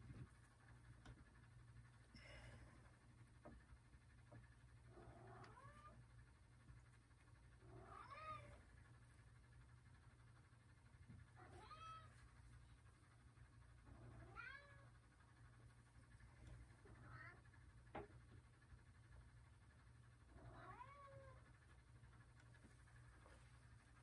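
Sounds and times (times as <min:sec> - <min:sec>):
cat meowing faintly: 0:11.4 - 0:12.2, 0:20.4 - 0:21.4.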